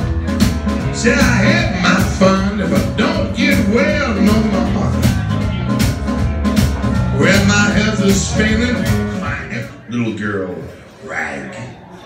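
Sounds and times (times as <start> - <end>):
blues band playing: 0.0 - 12.0.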